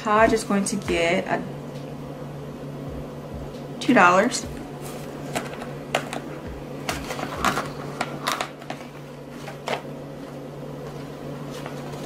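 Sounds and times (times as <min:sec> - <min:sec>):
paper bills crinkling: 0:06.9 - 0:09.9.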